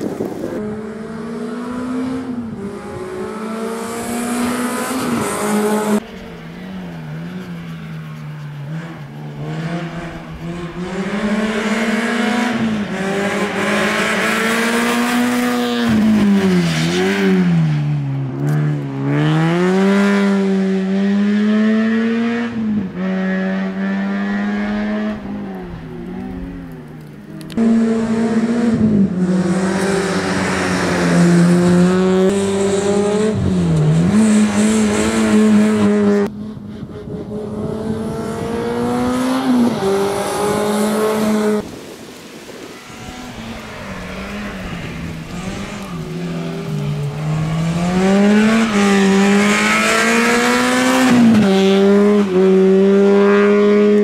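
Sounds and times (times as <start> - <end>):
rally car engine revving: 0.1 - 41.6, 42.7 - 54.0.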